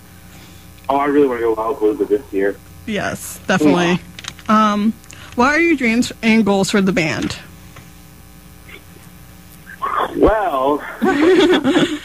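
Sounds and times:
faint steady hum: 0.0 - 12.0
person speaking: 0.9 - 7.4, 9.6 - 11.1.

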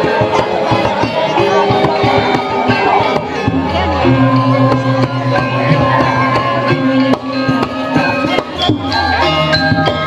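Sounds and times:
sharp percussive strikes: 0.0 - 10.0
metallophones ringing: 0.1 - 10.0.

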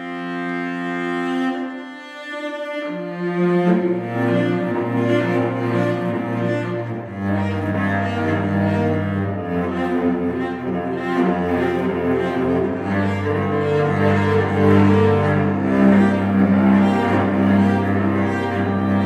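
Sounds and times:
solo cello bowed notes: 0.0 - 19.0.

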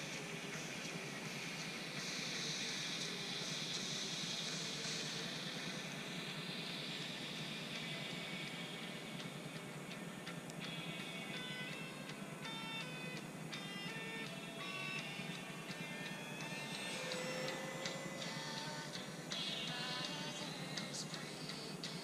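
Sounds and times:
steady hiss: 0.0 - 22.0.

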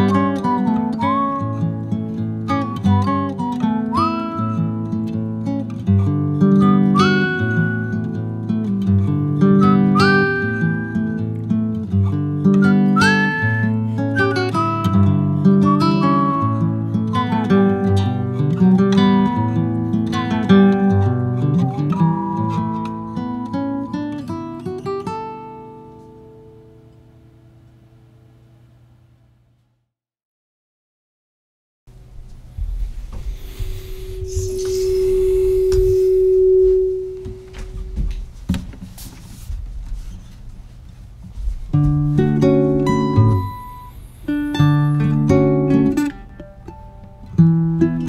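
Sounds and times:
acoustic guitar strumming: 0.0 - 27.0, 32.8 - 39.1, 41.4 - 48.0
held pure tone: 32.0 - 38.4, 41.7 - 47.6
sliding melody line: 33.3 - 38.1, 41.7 - 46.9.

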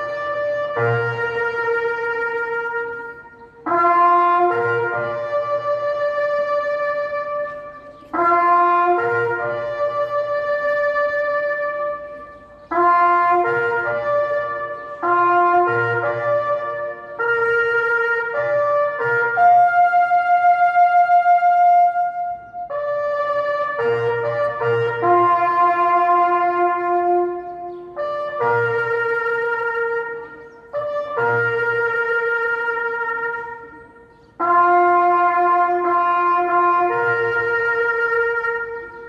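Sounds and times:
slow solemn trumpet melody: 0.0 - 39.0.

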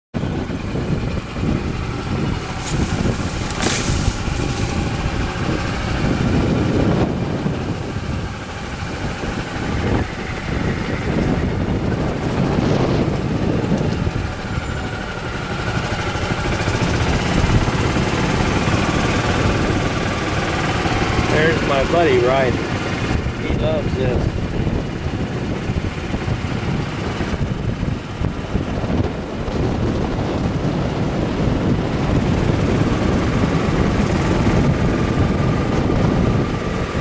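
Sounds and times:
golf cart running rumble: 0.2 - 37.0.

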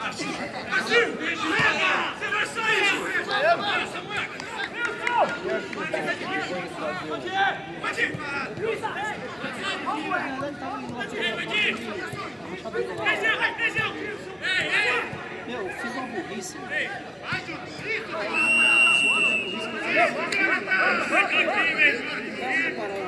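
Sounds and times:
footballers shouting: 0.0 - 23.0
whistle blast: 18.3 - 19.8.

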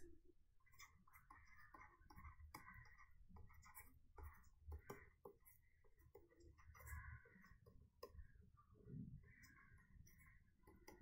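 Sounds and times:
stylus scratching on tablet: 0.6 - 11.0.

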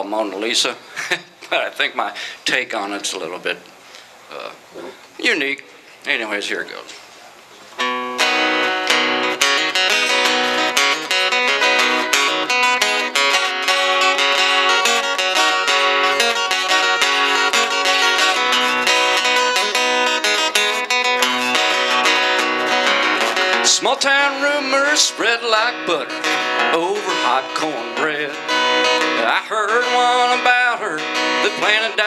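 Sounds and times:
acoustic guitar strumming: 7.8 - 32.0.

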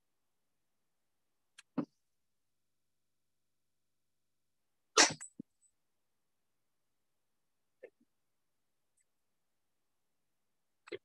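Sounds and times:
person sneezing: 5.0 - 5.3.

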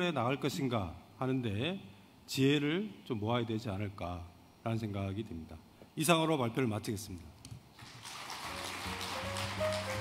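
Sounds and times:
audience applauding: 7.8 - 10.0
background music: 7.8 - 10.0.

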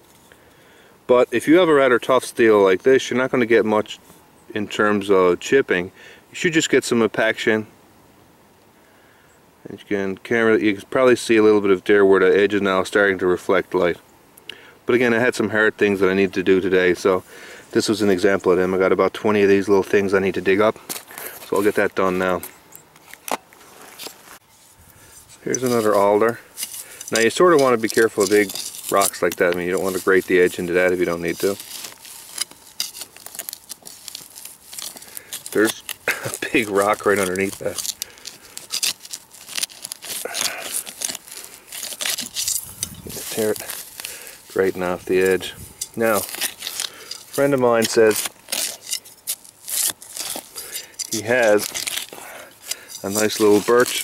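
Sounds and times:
footsteps on stony ground: 19.4 - 54.0.

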